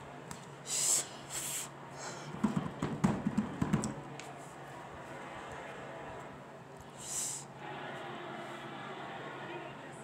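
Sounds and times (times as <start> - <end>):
television broadcast audio: 0.0 - 10.0.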